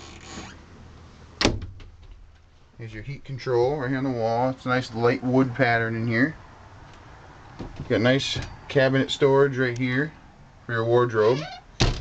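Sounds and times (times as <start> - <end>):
wooden door shutting: 1.4 - 2.2, 11.2 - 12.0.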